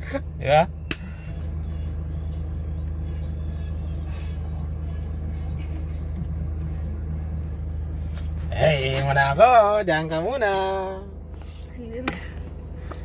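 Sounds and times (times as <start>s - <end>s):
van engine idling: 0.0s - 13.0s.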